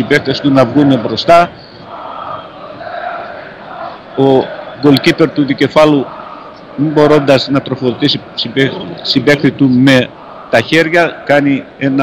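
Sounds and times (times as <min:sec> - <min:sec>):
stadium crowd chanting: 0:00.0 - 0:12.0.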